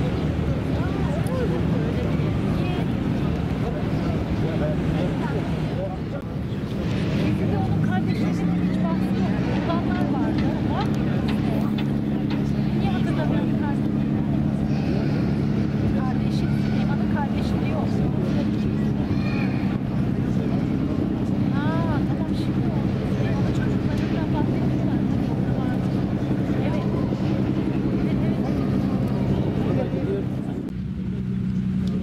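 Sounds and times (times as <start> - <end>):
boat engine droning: 0.0 - 32.0
people talking: 0.0 - 32.0.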